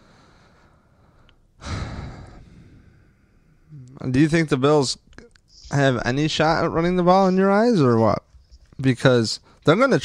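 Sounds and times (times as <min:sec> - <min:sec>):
man sighing: 0:01.6 - 0:03.1.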